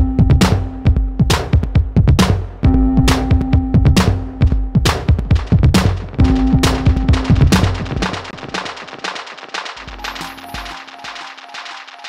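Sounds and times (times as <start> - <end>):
low bass: 0.0 - 8.3
held synth tone: 9.9 - 12.0.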